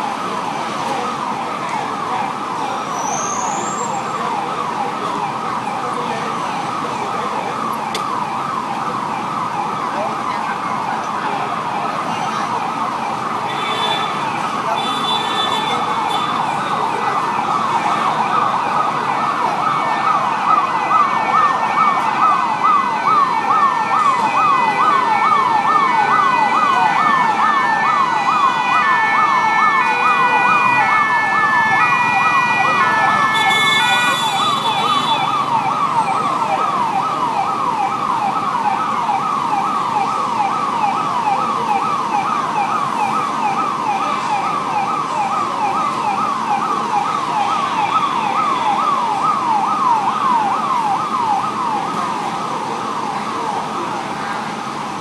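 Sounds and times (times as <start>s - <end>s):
siren in fast sweeps: 0.0s - 53.5s
siren with stepped high tones: 0.0s - 53.5s.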